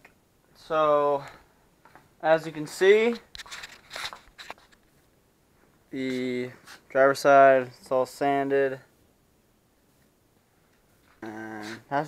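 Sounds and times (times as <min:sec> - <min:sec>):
crinkling rustling scratches: 0:02.5 - 0:05.0.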